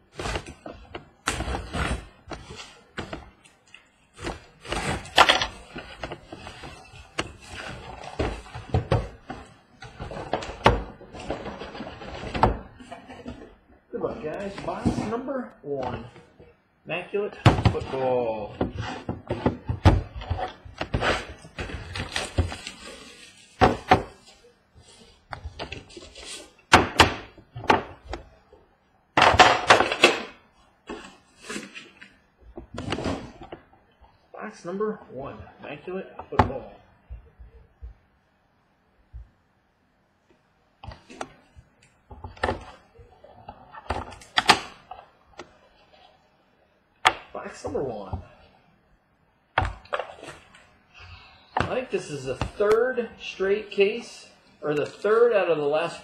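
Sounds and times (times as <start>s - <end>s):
cardboard boxes sliding and knocking: 0.0s - 3.4s, 4.1s - 15.2s
cardboard flaps rustling: 0.0s - 13.6s, 17.5s - 28.2s
boxes thudding on a table: 23.6s - 24.2s, 29.2s - 30.4s.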